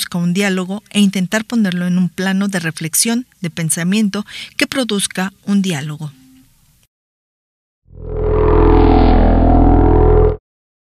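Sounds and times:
low many-toned transition hum: 7.9s - 10.4s.

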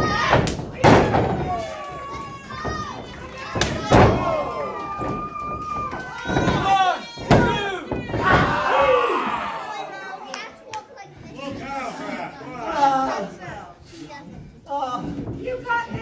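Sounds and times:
people shouting: 0.0s - 10.2s
crowd voices: 0.0s - 16.0s.

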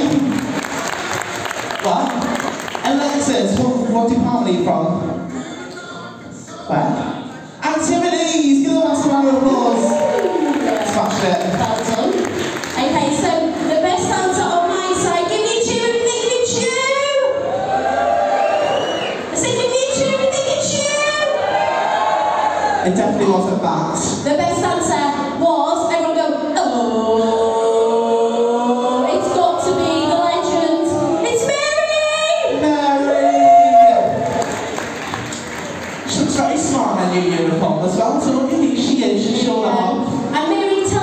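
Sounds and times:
singers holding long notes: 26.7s - 31.7s.

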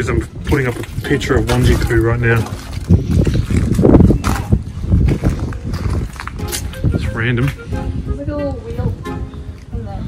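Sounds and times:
footsteps on wet concrete: 0.0s - 8.0s.

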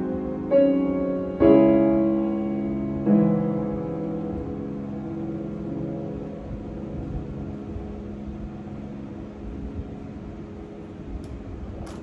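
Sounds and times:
piano chord ringing: 0.0s - 10.8s.

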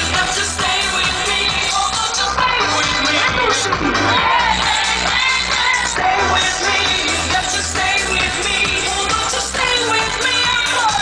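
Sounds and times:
dance music: 0.0s - 11.0s
steady bass beat: 0.0s - 11.0s
woman singing: 0.0s - 11.0s.

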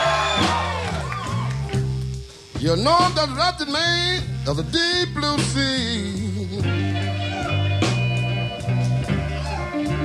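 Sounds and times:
electric blues band playing: 0.0s - 10.0s
low bass line: 0.0s - 10.0s.

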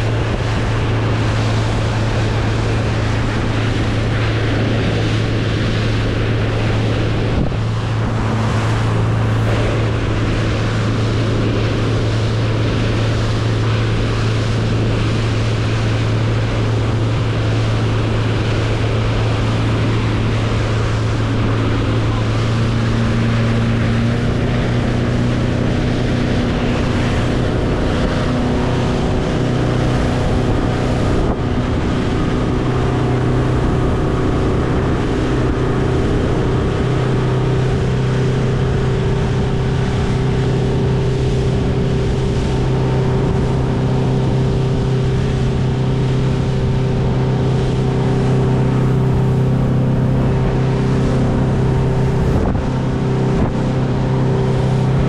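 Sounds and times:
motorboat engine drone: 0.0s - 55.0s
water spray rushing off hull: 0.0s - 55.0s
wind buffeting microphone: 0.0s - 55.0s.

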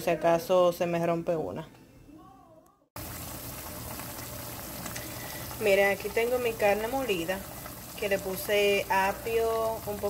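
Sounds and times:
beef simmering in a pot: 3.0s - 10.0s.

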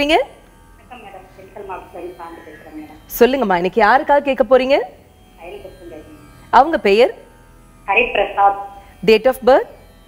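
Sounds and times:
woman speaking: 0.9s - 7.2s, 7.9s - 9.8s.

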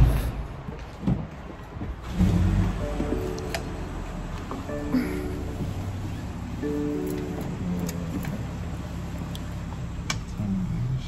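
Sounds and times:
car engine rumble: 0.0s - 11.0s
road noise: 0.0s - 11.0s.

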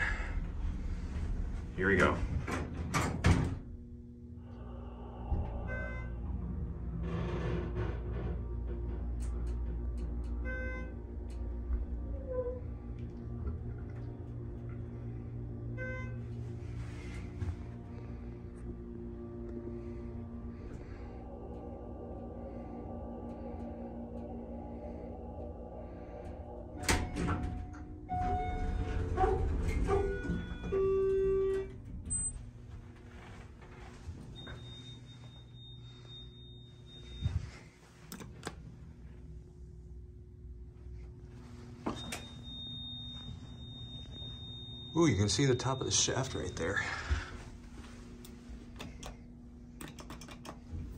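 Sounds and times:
elevator doors sliding open: 0.0s - 3.8s, 5.1s - 12.7s, 19.9s - 35.1s, 41.5s - 50.9s
elevator drive humming: 0.0s - 50.9s
elevator stopping knock: 25.9s - 32.1s
high steady beep: 42.0s - 46.8s.

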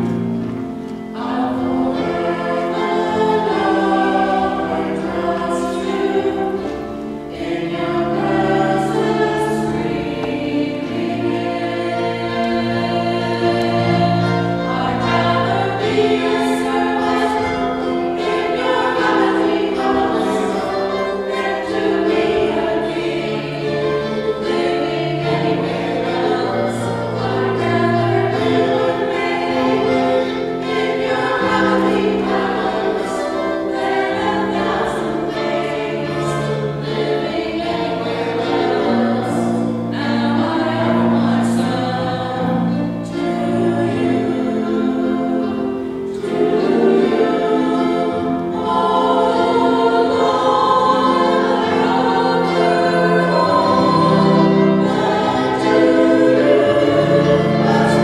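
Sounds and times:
church choir singing: 0.0s - 58.0s.

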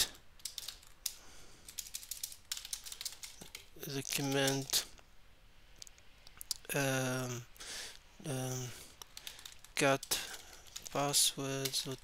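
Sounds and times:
computer keyboard typing: 0.4s - 4.7s, 9.0s - 12.0s.

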